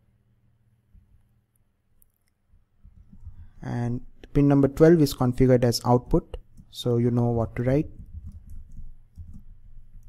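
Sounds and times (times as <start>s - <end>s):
computer keyboard typing: 7.9s - 10.0s.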